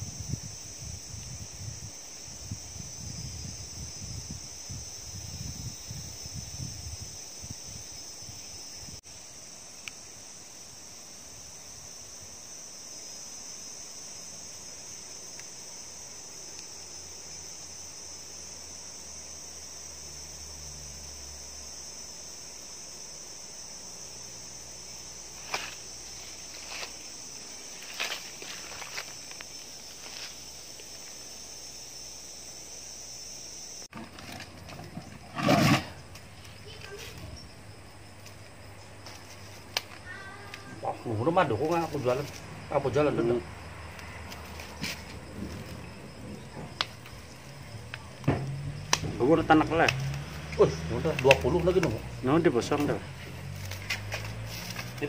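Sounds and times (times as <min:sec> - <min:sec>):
wind rumble on microphone: 0:00.0 - 0:09.0, 0:45.1 - 0:49.2
insect chorus droning: 0:00.0 - 0:55.0.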